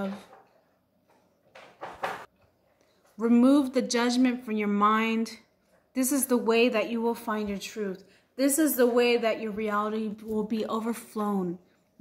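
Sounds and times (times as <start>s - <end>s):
woman speaking: 0.0s - 0.3s, 3.2s - 11.7s.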